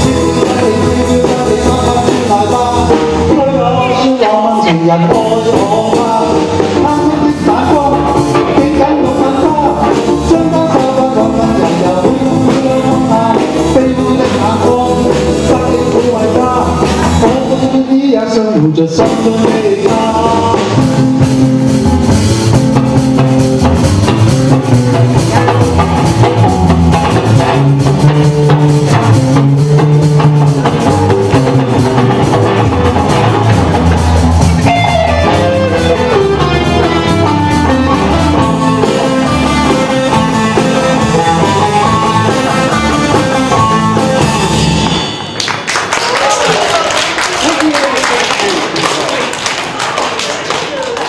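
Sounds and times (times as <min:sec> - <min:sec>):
drum kit beat: 0:00.0 - 0:45.4
pop-rock band playing: 0:00.0 - 0:46.6
audience clapping: 0:45.2 - 0:51.0.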